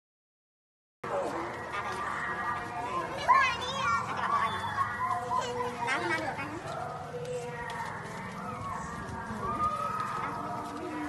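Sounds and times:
children calling and chattering: 1.0s - 11.0s.

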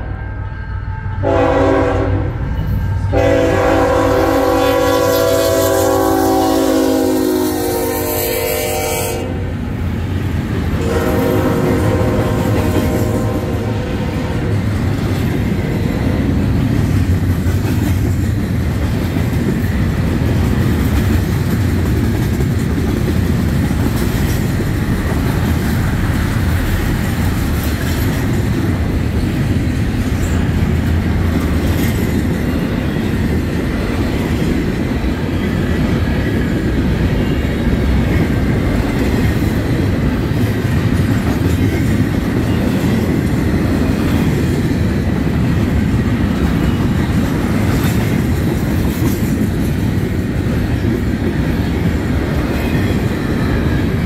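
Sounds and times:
locomotive air horn blasts: 0.0s - 9.5s, 10.8s - 14.5s
train cars rumbling: 0.0s - 54.0s
train wheels clickety-clack: 9.7s - 54.0s.

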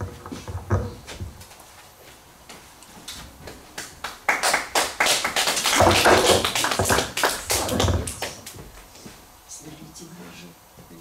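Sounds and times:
congregation applauding: 3.8s - 8.6s.

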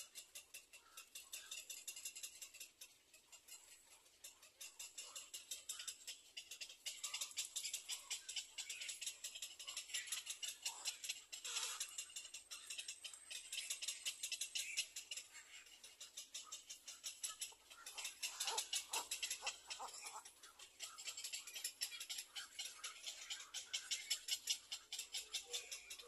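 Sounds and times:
animals ticking chatter: 0.0s - 26.0s.

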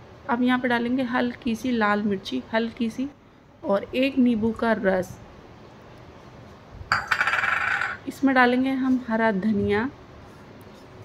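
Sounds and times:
metal utensils clinking: 6.9s - 8.0s.

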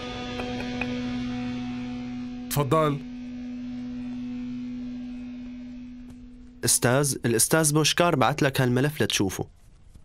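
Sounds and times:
steady low hum: 0.0s - 9.8s.

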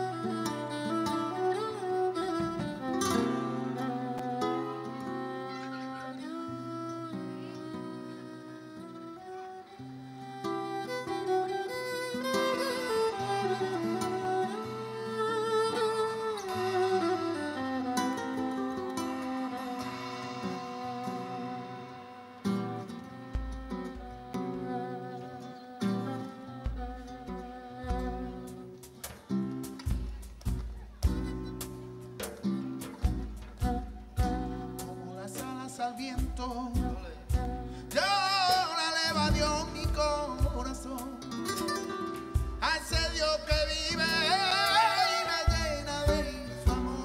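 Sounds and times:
violin and cello melody: 0.0s - 28.9s
guitar: 0.0s - 47.0s.

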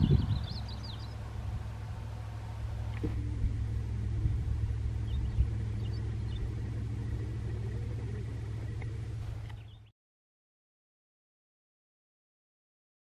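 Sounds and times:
faint bird chirps: 0.0s - 1.3s, 5.0s - 9.9s
locomotive engine rumble: 0.0s - 9.9s.

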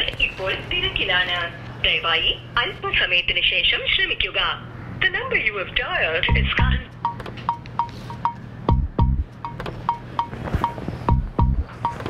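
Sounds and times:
person talking: 6.2s - 6.9s.

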